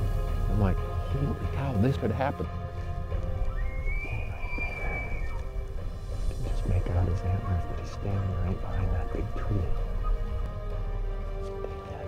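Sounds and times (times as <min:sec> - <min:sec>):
background music: 0:00.0 - 0:12.0
elk bugling whistle: 0:03.3 - 0:05.9.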